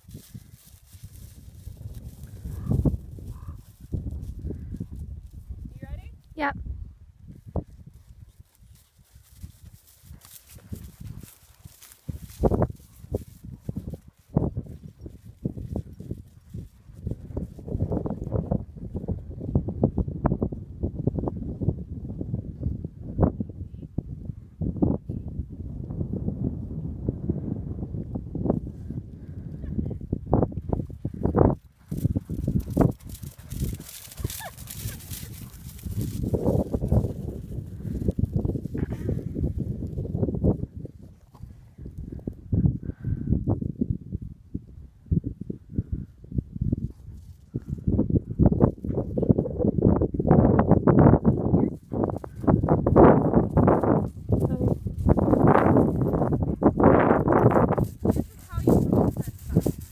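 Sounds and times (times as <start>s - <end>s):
horse hoofbeats cantering: 8.6s - 17.6s, 31.5s - 38.6s, 51.8s - 59.9s.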